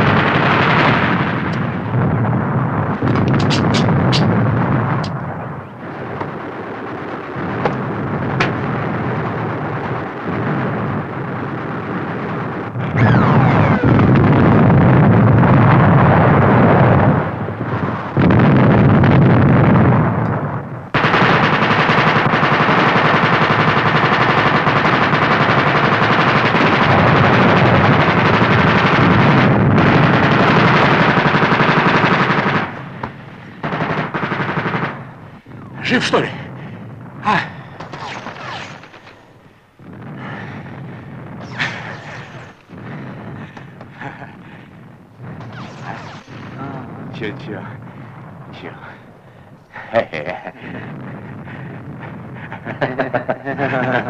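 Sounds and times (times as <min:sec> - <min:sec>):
machine-gun fire: 0:00.0 - 0:02.0, 0:03.0 - 0:05.2, 0:05.9 - 0:20.2, 0:20.9 - 0:37.2, 0:37.8 - 0:44.0, 0:44.7 - 0:47.2.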